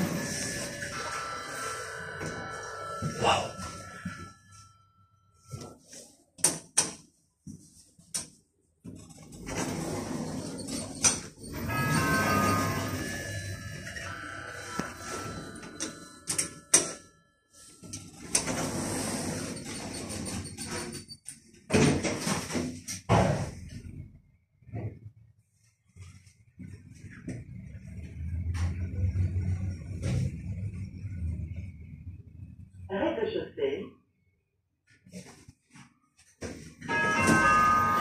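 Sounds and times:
lift doors sliding closed: 0:09.3 - 0:13.4, 0:18.1 - 0:21.0.

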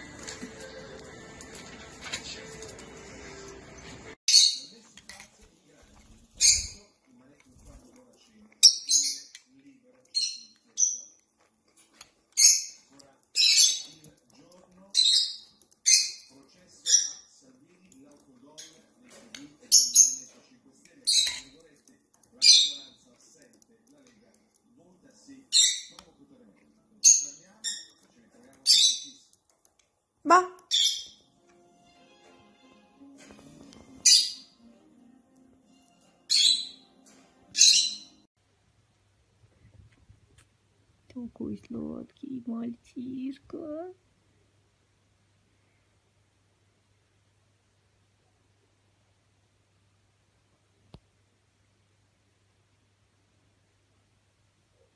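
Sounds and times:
faint background music: 0:00.0 - 0:49.4
parrot squawking: 0:34.0 - 0:34.6, 0:36.3 - 0:36.9, 0:37.5 - 0:38.2.

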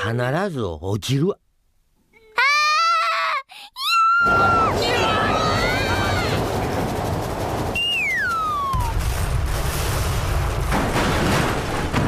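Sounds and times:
rumbling crash: 0:04.2 - 0:12.0
cartoon falling whistle: 0:07.8 - 0:09.0.

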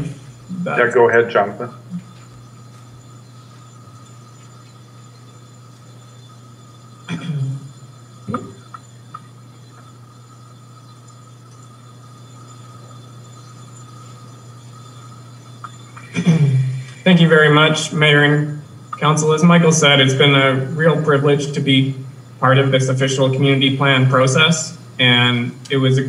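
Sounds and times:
low electrical hum: 0:00.0 - 0:26.0.

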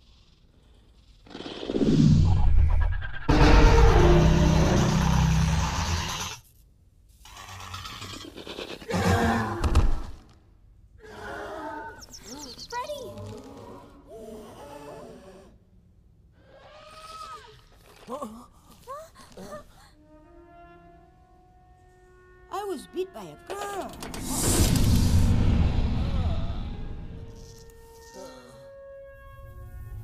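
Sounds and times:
film score music: 0:02.0 - 0:06.5, 0:18.8 - 0:30.0
loud crash with deep rumble: 0:24.2 - 0:27.4.

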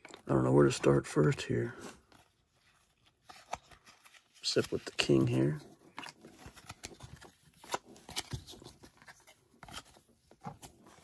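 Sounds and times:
cards clicking and rustling: 0:00.0 - 0:11.0.

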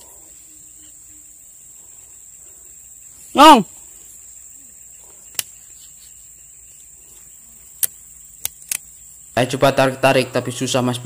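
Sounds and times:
insect chorus: 0:00.0 - 0:11.0.

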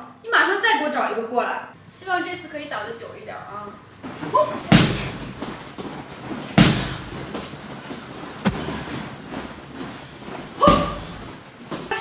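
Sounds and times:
boxing glove punches landing: 0:04.7 - 0:05.6, 0:06.5 - 0:07.4, 0:08.4 - 0:09.4, 0:10.6 - 0:11.4.

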